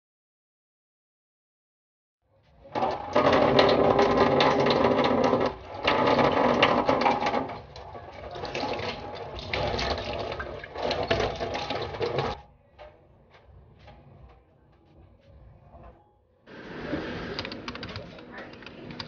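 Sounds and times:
tap water running into sink: 2.7s - 12.4s.

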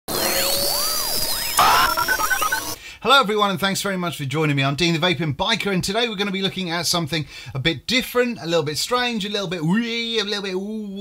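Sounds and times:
synthetic tones sweeping: 0.1s - 2.8s.

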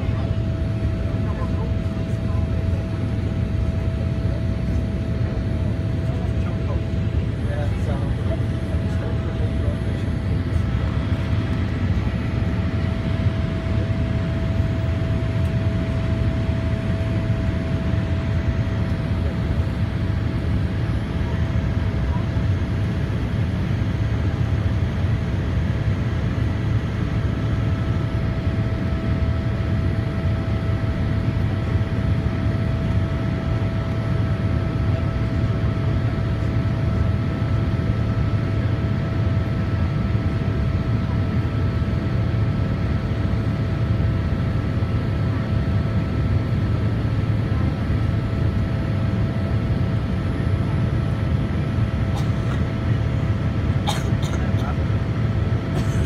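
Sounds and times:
jet engine drone: 0.0s - 56.0s.

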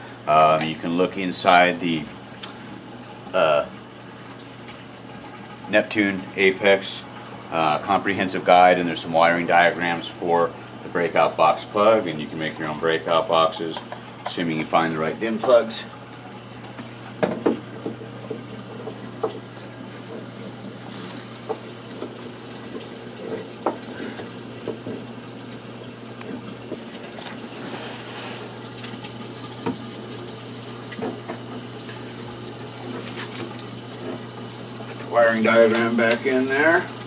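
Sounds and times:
water flowing in aquarium sump: 0.0s - 37.0s.

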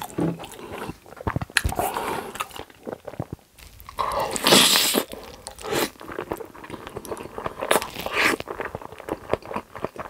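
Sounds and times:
slurping spaghetti: 0.0s - 10.0s.

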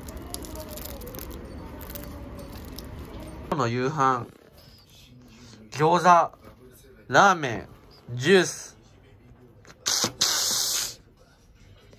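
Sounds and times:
short hissing bursts: 9.8s - 11.0s.

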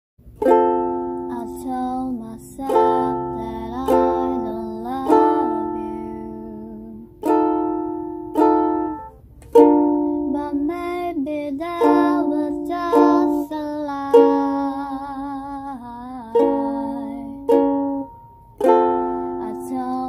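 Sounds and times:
ukulele strummed in slow chords: 0.3s - 20.0s.

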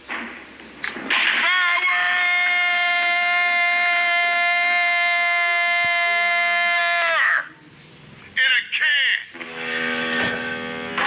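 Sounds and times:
man shouting: 1.4s - 7.6s.

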